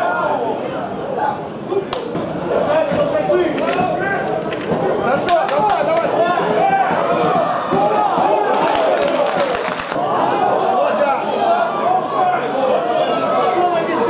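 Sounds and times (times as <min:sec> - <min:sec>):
people shouting and talking: 0:00.0 - 0:14.0.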